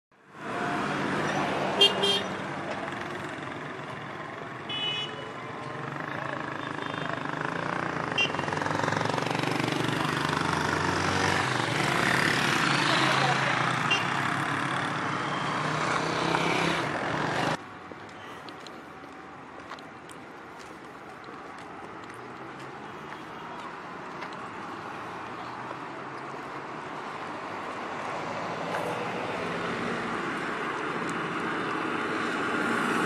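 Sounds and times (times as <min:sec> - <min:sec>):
tyre noise of passing vehicles: 0:00.2 - 0:33.0
vehicle engines running: 0:00.3 - 0:33.0.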